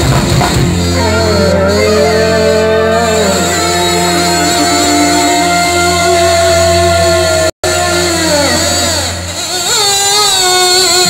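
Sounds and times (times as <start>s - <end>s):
fusion band playing amplified music: 0.0s - 11.0s.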